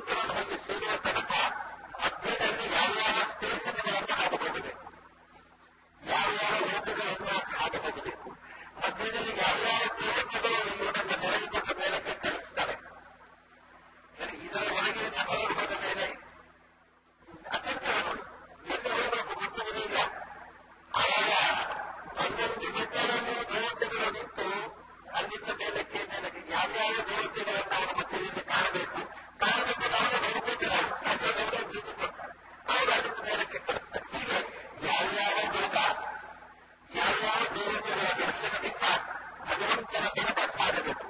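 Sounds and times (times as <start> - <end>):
man speaking: 0.0 - 4.9, 6.0 - 12.9, 14.2 - 16.2, 17.3 - 41.0.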